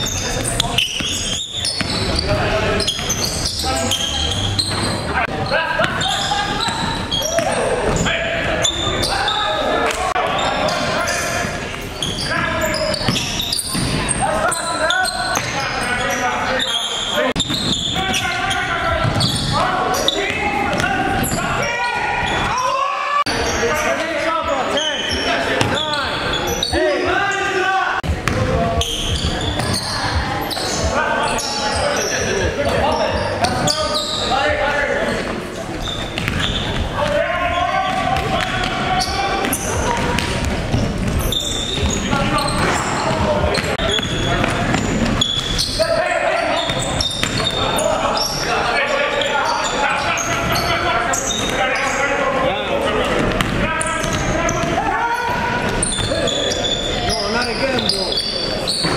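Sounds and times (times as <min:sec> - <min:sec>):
players calling out: 0:00.0 - 0:58.9.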